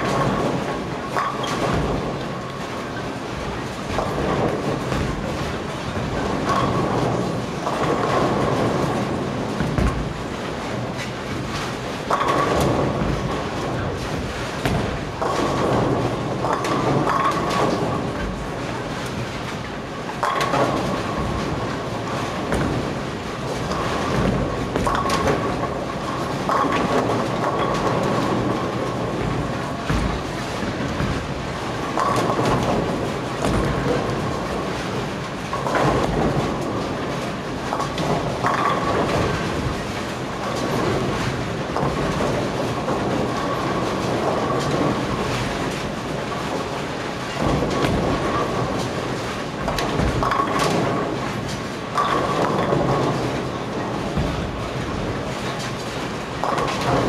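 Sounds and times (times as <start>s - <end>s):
bowling balls rolling: 0.0s - 57.0s
bowling pins crashing: 0.0s - 57.0s.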